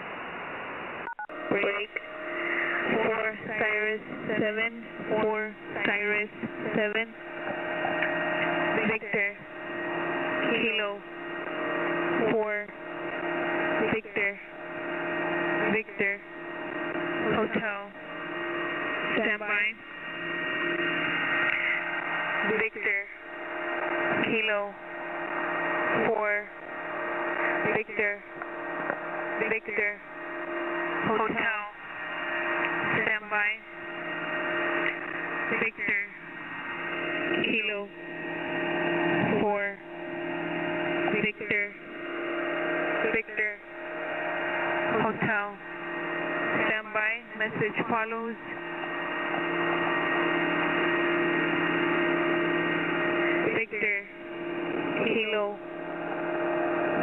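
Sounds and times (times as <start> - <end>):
shortwave radio static: 0.0 - 57.0.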